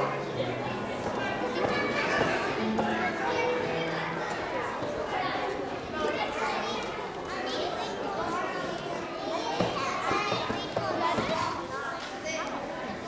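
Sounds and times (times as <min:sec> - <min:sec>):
crowd chatter in a hall: 0:00.0 - 0:13.0.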